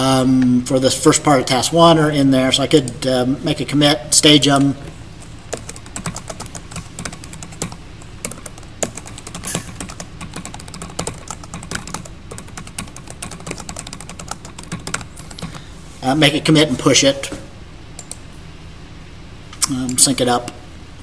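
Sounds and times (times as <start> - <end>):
computer keyboard typing: 5.2 - 15.6.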